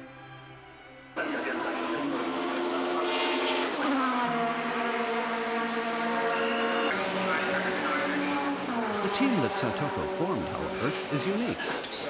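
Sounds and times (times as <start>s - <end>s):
race car engine starting and revving: 1.2s - 12.0s.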